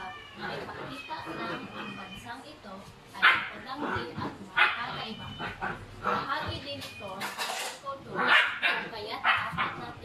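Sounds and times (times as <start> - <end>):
puppy barking: 3.2 - 3.6, 4.6 - 4.9, 8.2 - 9.9.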